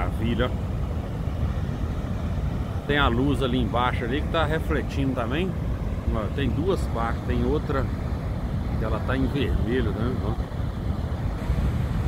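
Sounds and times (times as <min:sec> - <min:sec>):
waterfall roaring: 0:00.0 - 0:12.0.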